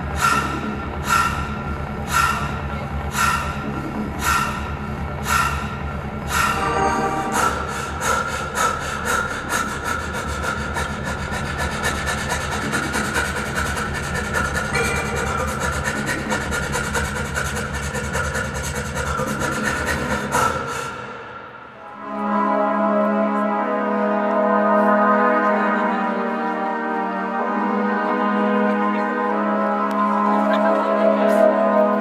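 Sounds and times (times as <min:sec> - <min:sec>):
fast scratchy rasping rhythm: 0:00.0 - 0:20.6
steady low drone: 0:00.0 - 0:32.0
brassy chord: 0:06.6 - 0:07.6, 0:21.8 - 0:30.3.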